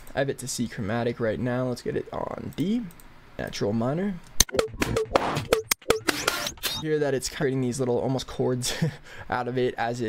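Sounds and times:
pitched percussion loop: 4.4s - 6.8s.

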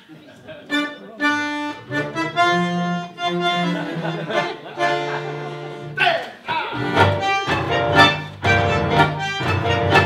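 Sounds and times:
bandoneon playing held chords: 0.7s - 6.0s, 6.8s - 10.0s.

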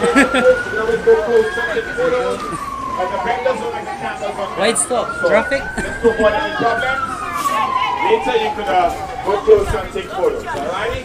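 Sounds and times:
people's voices: 0.0s - 11.0s
siren wailing: 0.0s - 11.0s.

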